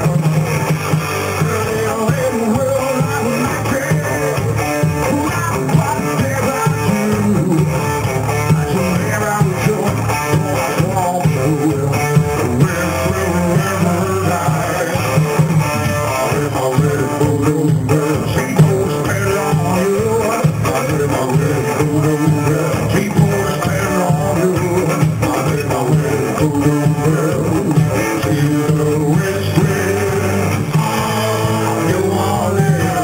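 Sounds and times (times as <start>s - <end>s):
bass guitar: 0.0s - 33.0s
drums: 0.0s - 33.0s
electric guitar: 0.0s - 33.0s.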